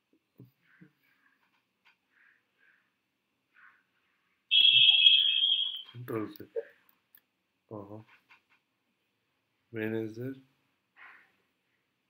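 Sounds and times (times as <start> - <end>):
high-pitched steady tone: 4.5 - 6.0.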